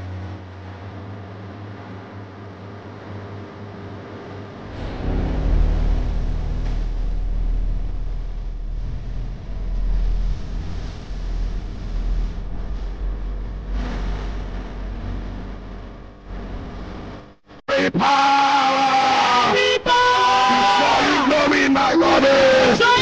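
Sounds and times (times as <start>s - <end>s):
deep cinematic rumble: 4.3s - 17.6s.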